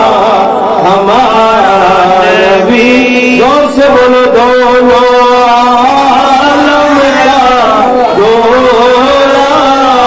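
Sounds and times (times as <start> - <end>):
man singing devotional poem: 0.0 - 10.0.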